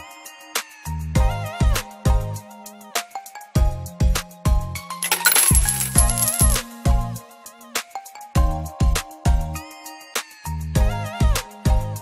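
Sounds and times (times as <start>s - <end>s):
coin jingle sound effect: 5.0s - 6.7s.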